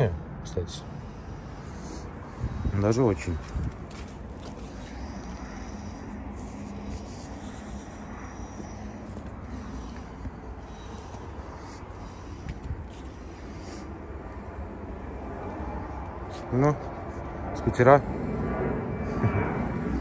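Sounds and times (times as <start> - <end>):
jet airliners taking off: 0.3 - 20.0.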